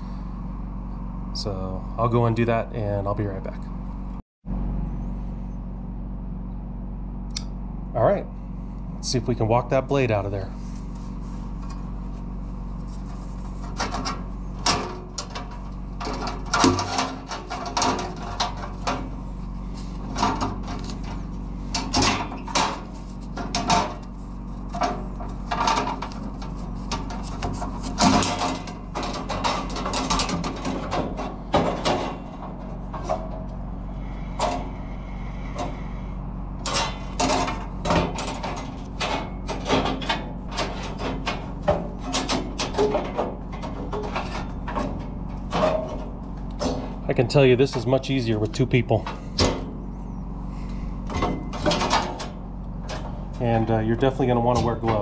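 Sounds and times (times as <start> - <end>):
steady low hum: 0.0 - 55.0
saw blade scraping and rattling: 12.8 - 36.0, 36.6 - 49.6.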